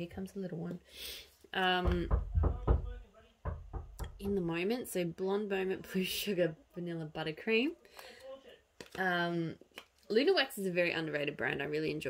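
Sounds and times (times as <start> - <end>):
dull knocks and thumps: 1.8 - 4.5.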